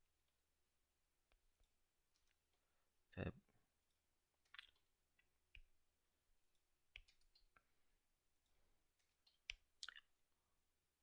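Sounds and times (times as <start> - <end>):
computer keys and mouse clicks: 6.5 - 7.7, 8.4 - 9.8.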